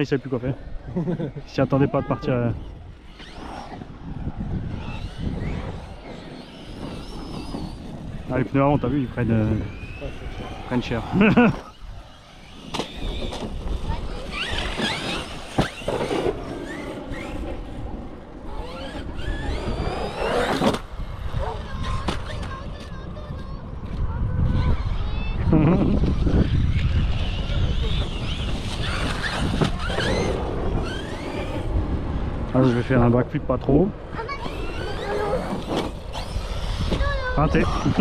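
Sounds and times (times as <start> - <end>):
electric motor whine revving: 0.0 - 22.6, 24.6 - 33.1, 34.2 - 38.0.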